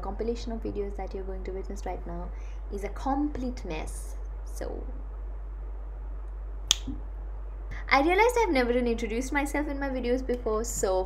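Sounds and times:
faint steady low hum: 0.0 - 11.0
finger snap: 6.7 - 7.0.

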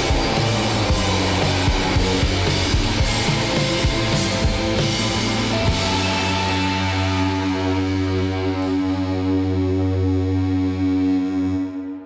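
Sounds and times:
distorted guitar and keyboard drone: 0.0 - 12.0.

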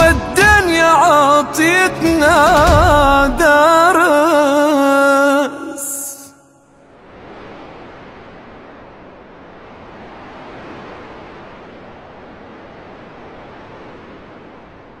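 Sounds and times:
steady rushing noise: 6.9 - 15.0.

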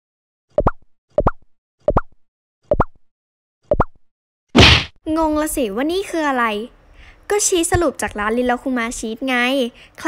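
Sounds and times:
cartoon pop sound effect: 4.6 - 4.9.

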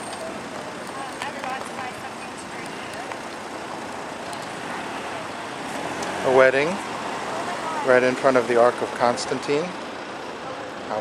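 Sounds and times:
faint voices: 0.0 - 3.3, 4.0 - 11.0
car driving slowly past: 0.0 - 11.0
street traffic noise: 0.0 - 11.0.

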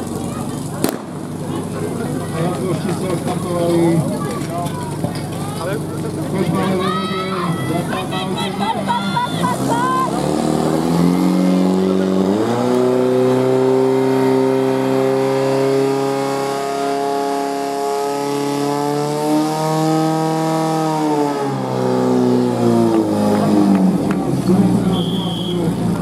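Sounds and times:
pump engine running at full revs: 0.0 - 26.0.

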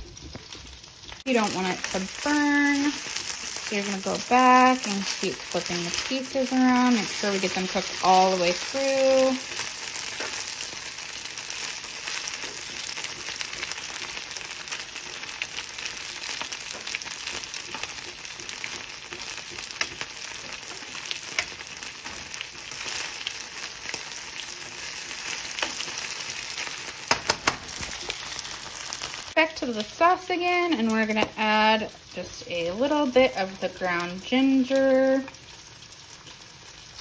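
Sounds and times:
meat sizzling in a pan: 0.0 - 37.0
metal tongs turning meat: 1.6 - 28.3.

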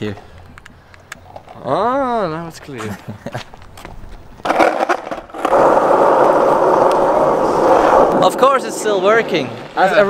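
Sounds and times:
skateboard wheels rolling on asphalt: 0.0 - 10.0.

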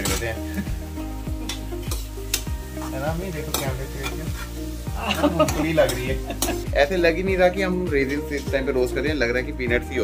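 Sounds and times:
hot fat sizzling: 0.0 - 10.0
metal spatula scraping a pan: 1.5 - 6.7.

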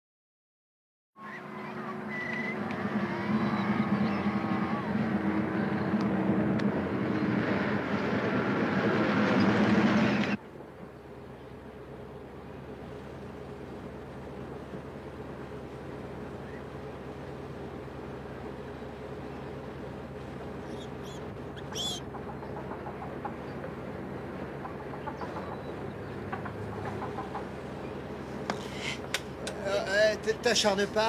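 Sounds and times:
bus engine droning: 1.2 - 31.0.

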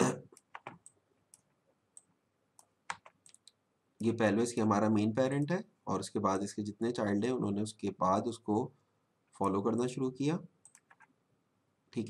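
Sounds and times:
faint computer mouse clicks: 0.3 - 3.6, 10.6 - 11.1.

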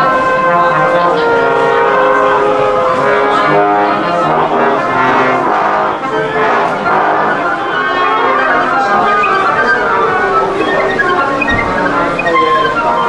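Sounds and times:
brass band playing chords: 0.0 - 13.0.

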